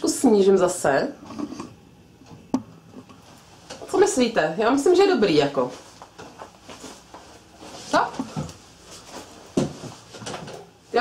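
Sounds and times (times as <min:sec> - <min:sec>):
faint rustling and handling: 0:05.2 - 0:11.0.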